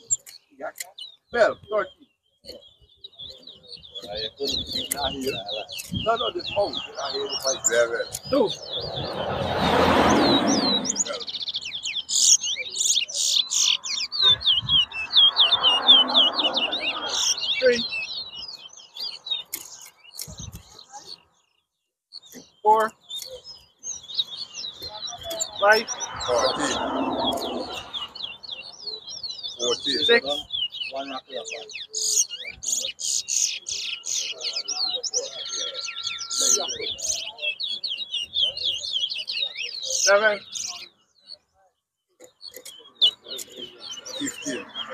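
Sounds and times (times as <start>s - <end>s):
finches whistling chirps: 0.0s - 21.2s, 22.2s - 41.4s, 42.2s - 44.9s
murmuring voices: 3.8s - 11.4s, 24.7s - 31.9s, 34.0s - 41.0s, 42.3s - 44.9s
rush of noise: 8.6s - 11.3s.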